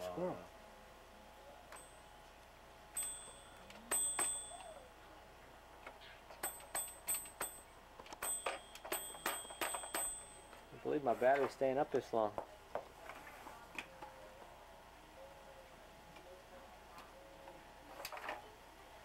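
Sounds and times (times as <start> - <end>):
toy train bell dinging: 1.7 - 2.2, 2.9 - 5.0, 6.4 - 10.6.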